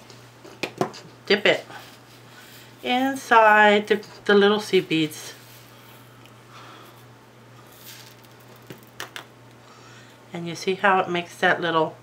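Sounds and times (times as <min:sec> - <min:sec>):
seed beads rustling: 0:07.6 - 0:09.0.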